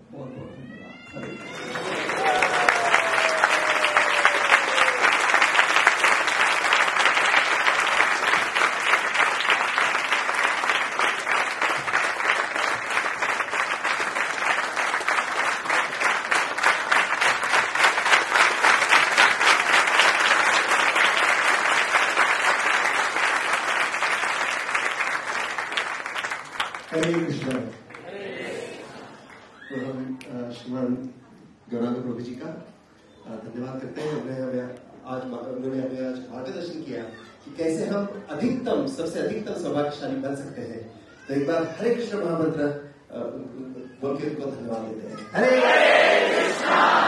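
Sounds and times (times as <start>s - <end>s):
audience applauding: 1.2s - 28.6s.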